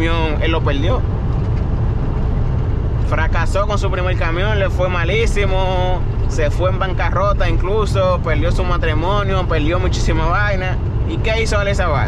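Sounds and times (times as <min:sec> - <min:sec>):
truck engine and road rumble: 0:00.0 - 0:12.0
wind and tyre hiss: 0:00.0 - 0:12.0.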